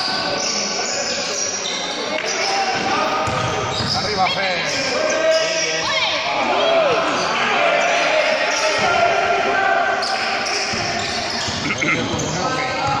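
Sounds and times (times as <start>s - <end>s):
voices calling out: 0.0s - 13.0s
basketball bouncing on wooden court: 10.7s - 13.0s.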